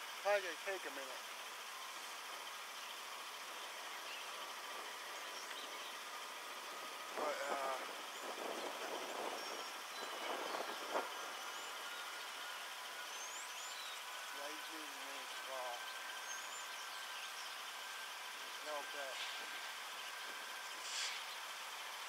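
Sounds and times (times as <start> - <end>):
faint outdoor background noise: 0.0 - 22.0
muffled voice speaking: 7.2 - 7.9, 18.6 - 19.3.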